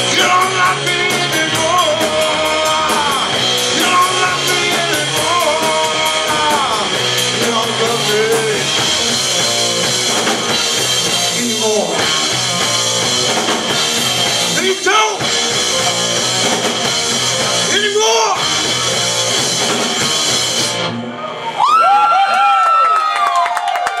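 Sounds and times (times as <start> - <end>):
rock band playing loud: 0.0 - 23.2.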